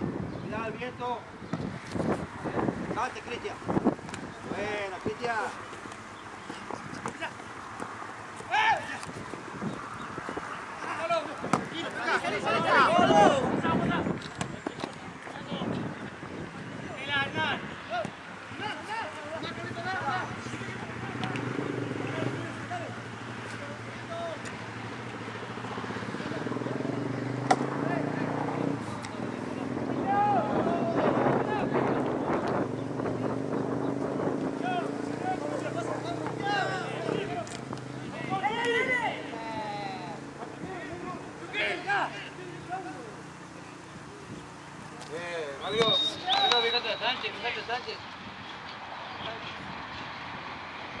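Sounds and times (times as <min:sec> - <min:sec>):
steady background noise: 0:00.0 - 0:51.0
distant shouts: 0:02.4 - 0:48.6.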